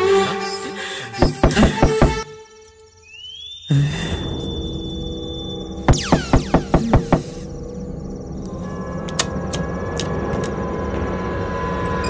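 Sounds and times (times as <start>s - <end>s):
background music: 0.0s - 2.9s
knocking on wooden door: 1.2s - 2.2s, 6.2s - 7.4s.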